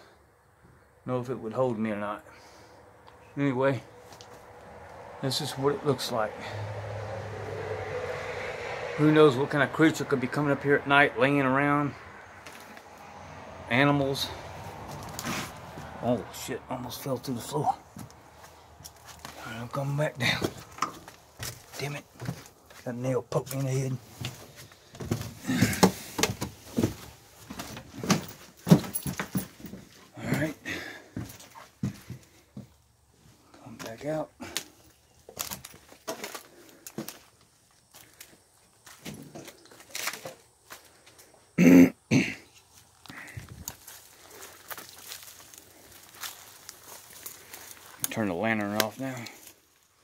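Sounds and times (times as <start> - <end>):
knocks and creaks of wooden boards: 20.3 - 22.5, 24.2 - 30.5.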